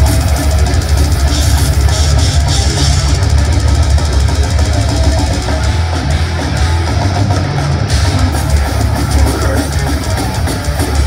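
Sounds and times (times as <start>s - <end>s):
death metal band playing live: 0.0s - 11.0s.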